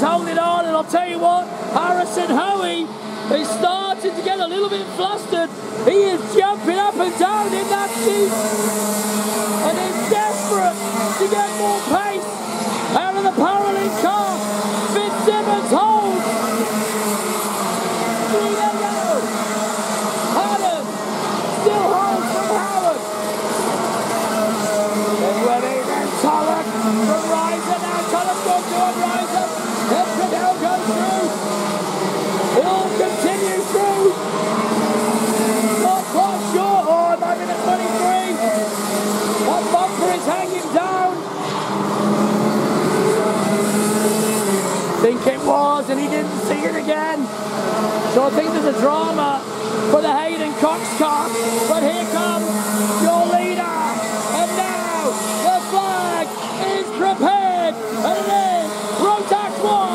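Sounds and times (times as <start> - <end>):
kart engines racing past: 0.0 - 59.9.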